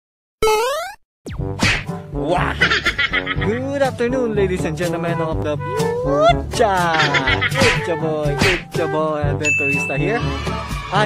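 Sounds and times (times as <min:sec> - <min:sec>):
cartoon upward gliding tone: 0:00.4 - 0:01.0
music: 0:01.3 - 0:11.0.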